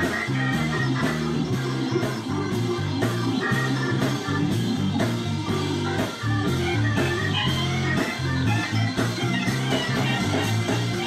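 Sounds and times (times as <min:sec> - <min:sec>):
bass line: 0:00.0 - 0:11.0
drums keeping steady beat: 0:00.0 - 0:11.0
electric guitar: 0:00.0 - 0:11.0
organ-style keyboard: 0:00.0 - 0:11.0.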